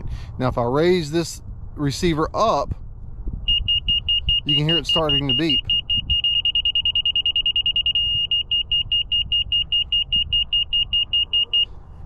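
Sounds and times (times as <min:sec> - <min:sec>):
high-pitched receiver beeping: 0:03.5 - 0:11.7
steady electronic tone: 0:03.5 - 0:11.7.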